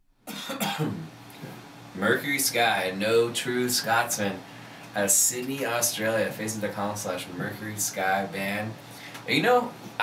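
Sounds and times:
man coughing: 0.3s - 1.6s.

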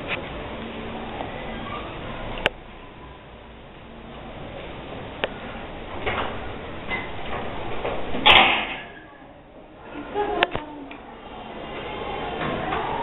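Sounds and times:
children writing at wooden desks: 0.0s - 13.0s.

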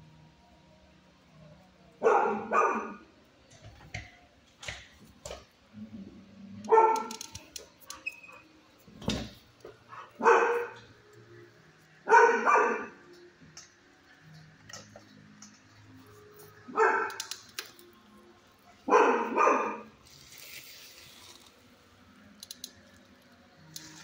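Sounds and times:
dog barking: 2.0s - 3.0s, 6.6s - 7.2s, 9.9s - 10.8s, 12.0s - 13.0s, 16.7s - 17.3s, 18.8s - 19.9s.

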